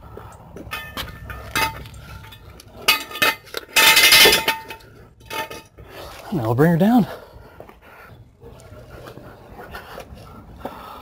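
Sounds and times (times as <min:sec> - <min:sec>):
metal stand clanking on concrete: 0:00.6 - 0:05.8.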